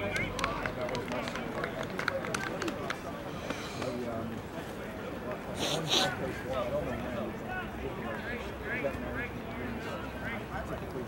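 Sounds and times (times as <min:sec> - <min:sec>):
players shouting and calling: 0:00.0 - 0:01.8.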